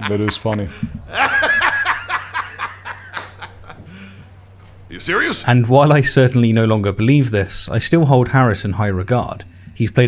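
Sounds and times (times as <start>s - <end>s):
man laughing: 0.0s - 4.2s.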